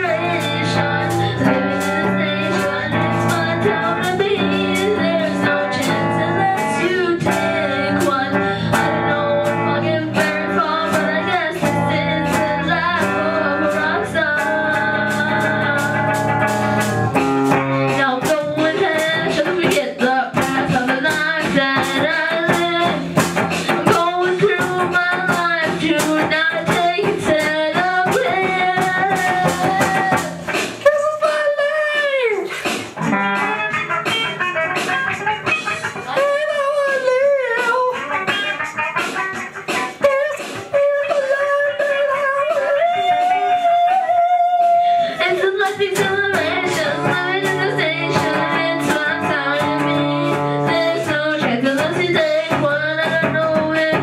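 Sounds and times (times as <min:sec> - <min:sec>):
drum kit beat: 0:00.0 - 0:54.0
electric guitar through an amp: 0:00.0 - 0:54.0
man singing: 0:41.0 - 0:47.5.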